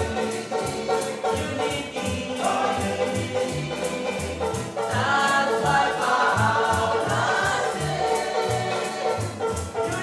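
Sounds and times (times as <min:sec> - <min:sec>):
male voices singing in harmony: 0:00.0 - 0:10.0
strummed guitars and ukulele: 0:00.0 - 0:10.0
tea-chest bass plucking: 0:00.0 - 0:10.0.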